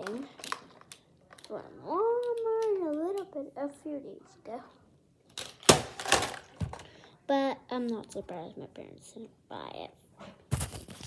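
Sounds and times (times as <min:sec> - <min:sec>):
plastic toy clacking and rattling: 0:00.0 - 0:03.3, 0:05.3 - 0:06.9.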